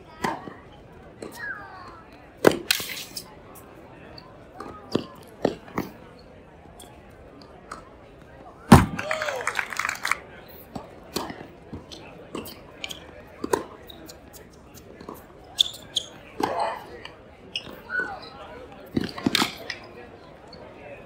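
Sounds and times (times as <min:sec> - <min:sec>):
tennis ball bouncing on hard court: 0:04.6 - 0:05.9, 0:13.4 - 0:13.7
racket hitting tennis ball: 0:13.4 - 0:13.7.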